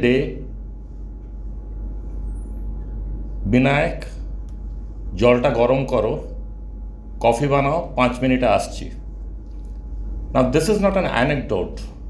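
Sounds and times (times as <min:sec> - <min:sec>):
low room rumble and hum: 0:00.0 - 0:12.0.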